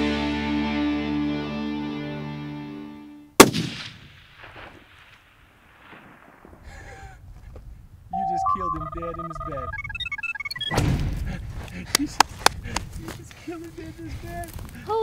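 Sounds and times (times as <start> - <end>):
background music: 0.0 - 3.3
loud rifle shot echoing: 3.4 - 6.6.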